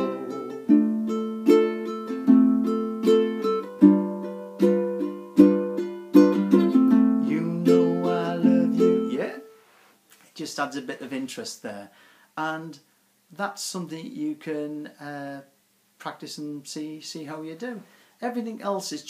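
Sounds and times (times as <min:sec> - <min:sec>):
ukulele chord strumming: 0:00.0 - 0:09.6.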